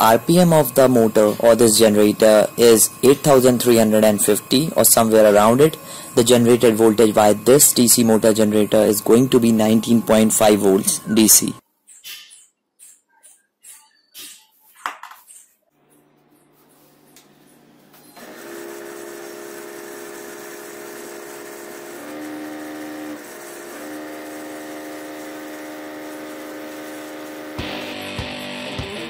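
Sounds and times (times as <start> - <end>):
motor humming tone: 0.0 - 11.6, 17.0 - 29.0.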